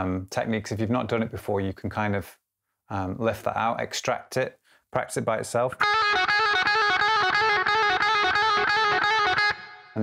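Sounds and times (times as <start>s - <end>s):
electric guitar fast lick: 5.8s - 10.0s.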